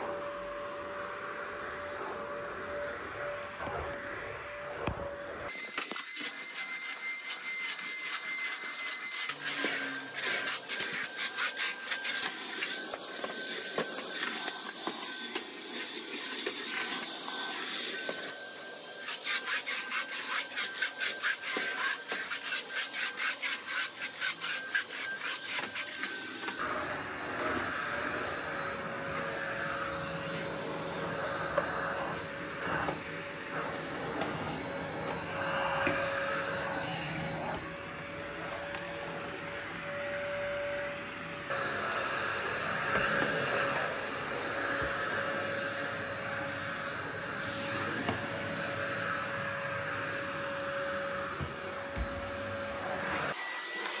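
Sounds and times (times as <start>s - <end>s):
vacuum cleaner running: 0.0s - 54.0s.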